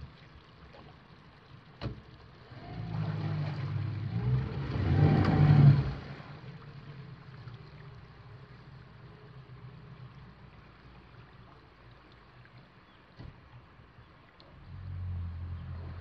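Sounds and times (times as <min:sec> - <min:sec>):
outboard motor running: 0:00.0 - 0:11.8.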